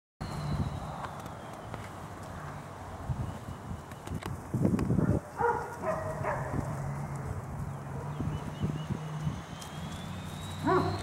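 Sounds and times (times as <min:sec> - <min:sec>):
puppies scuffling in dry leaves: 0:04.4 - 0:11.0
puppy yapping: 0:10.6 - 0:11.0.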